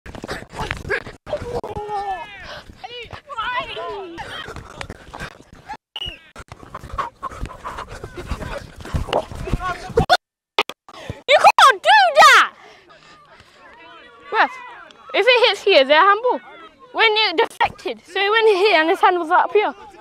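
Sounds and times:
players shouting: 1.3 - 4.6, 11.3 - 20.0.

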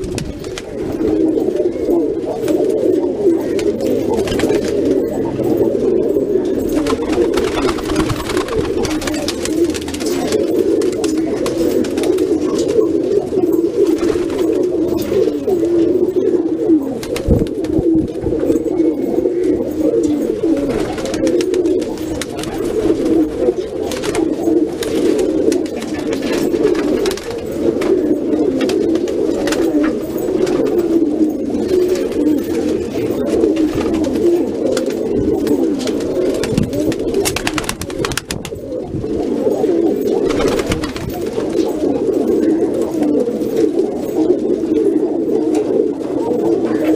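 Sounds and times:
pigeons cooing: 0.0 - 46.9.

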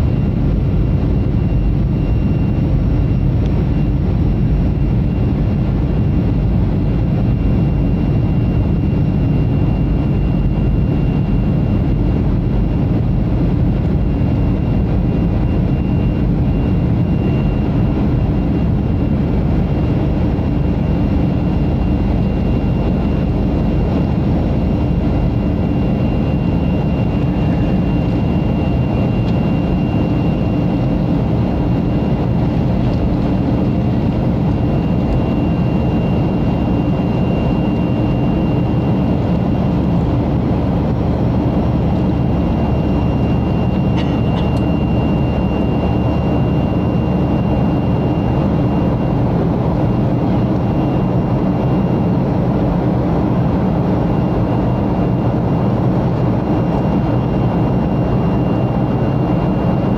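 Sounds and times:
jet engine cabin rumble: 0.0 - 59.9.

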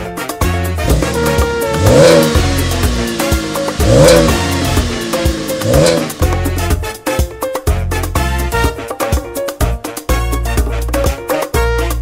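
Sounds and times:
music playing: 0.0 - 12.0
car engine revving: 0.8 - 6.9.

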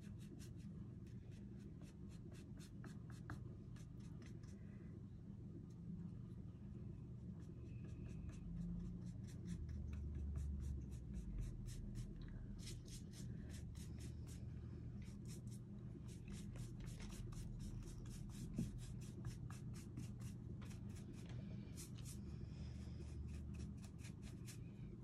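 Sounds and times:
paintbrush scratching on wood: 7.4 - 14.4, 15.0 - 22.2.

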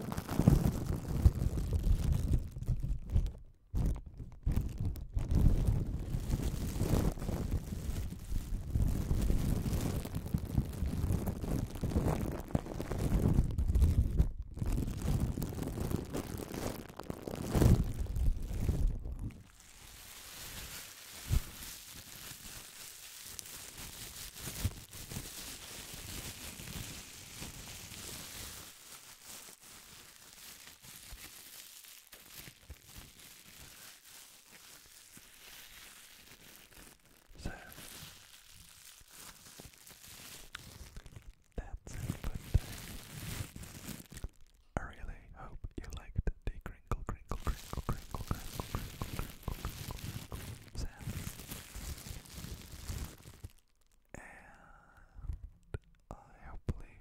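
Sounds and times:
plastic bag crinkling: 0.0 - 44.8, 47.3 - 54.1.

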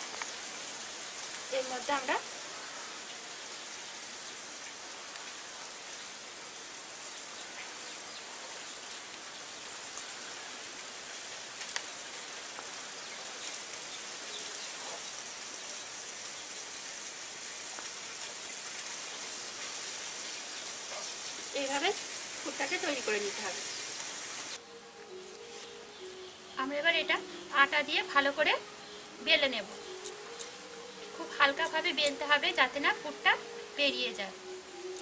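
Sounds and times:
steady hiss: 0.0 - 35.0.

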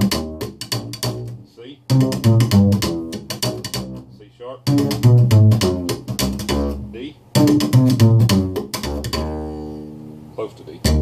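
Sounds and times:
slap bass notes: 0.0 - 11.0.

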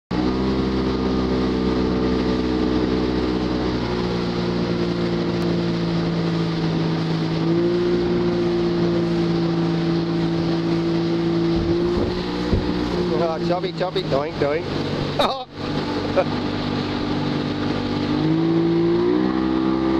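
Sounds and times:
motorboat engine running: 0.1 - 19.9
water noise: 0.1 - 19.9
wind noise: 11.4 - 13.2.

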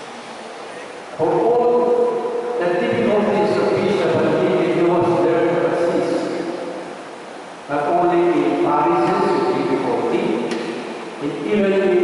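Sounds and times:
man chanting into a microphone: 1.2 - 6.4.

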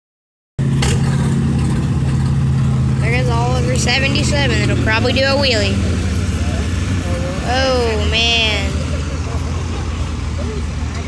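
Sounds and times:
tractor engine running steadily: 0.6 - 11.0.

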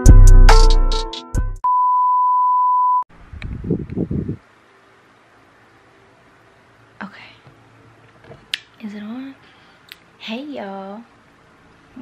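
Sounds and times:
high beep tone: 1.7 - 3.0.

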